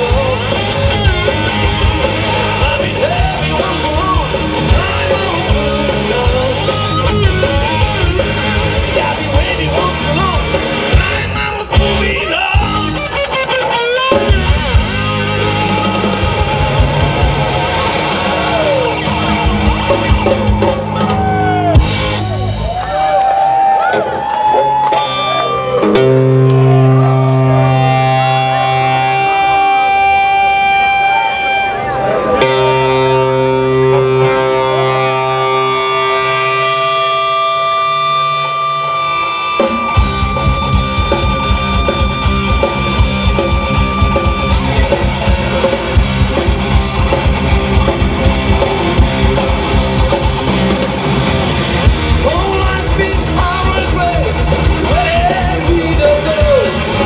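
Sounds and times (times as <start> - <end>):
bass notes: 0.0 - 24.2, 25.0 - 57.0
drums fast driving beat: 0.0 - 24.7, 38.4 - 57.0
electric guitar notes: 0.0 - 57.0.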